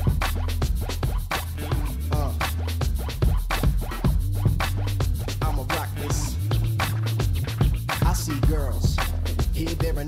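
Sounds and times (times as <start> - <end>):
electronic dance music: 0.0 - 10.0
record scratch sweeps: 0.0 - 10.0.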